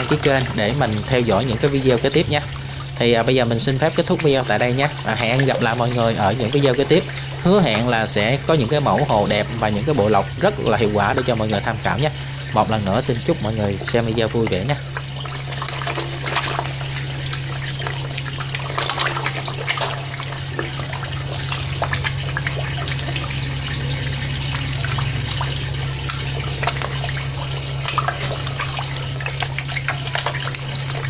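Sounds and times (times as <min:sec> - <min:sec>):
fish splashing in water: 0:00.0 - 0:31.0
steady low hum: 0:00.0 - 0:31.0.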